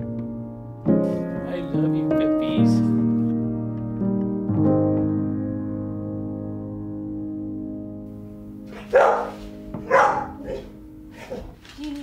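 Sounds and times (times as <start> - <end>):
dog barking: 8.7 - 11.5.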